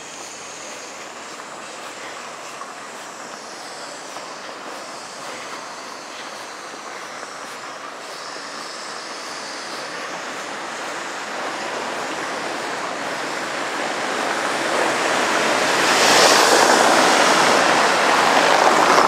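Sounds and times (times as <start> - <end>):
tyres rumbling on cobblestones: 0.0 - 19.0.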